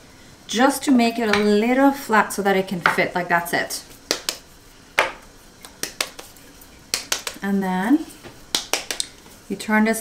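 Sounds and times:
hands patting pasta dough: 0:04.1 - 0:07.4, 0:08.5 - 0:09.2.

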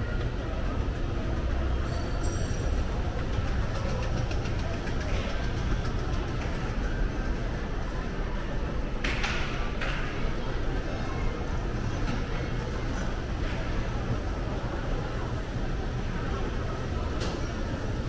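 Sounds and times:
murmur of distant voices: 0:00.0 - 0:18.0.

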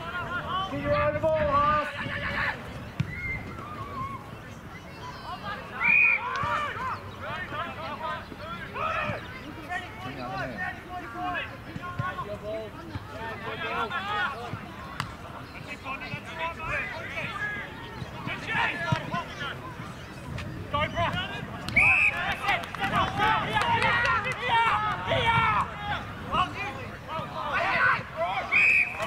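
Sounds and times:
distant players shouting: 0:05.2 - 0:19.8, 0:20.7 - 0:29.0.

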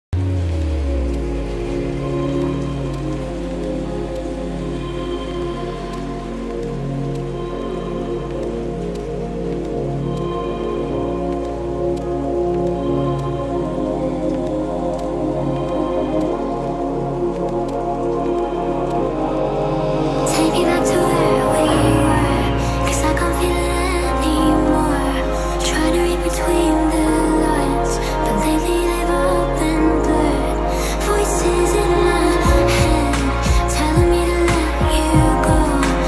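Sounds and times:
light rain-like patter: 0:00.2 - 0:36.0
sustained synth chords: 0:00.2 - 0:36.0.

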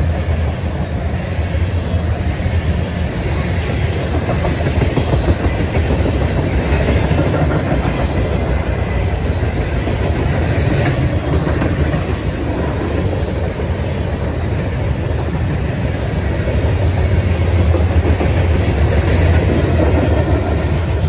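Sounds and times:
steel wheels rolling on rail: 0:00.0 - 0:21.0.

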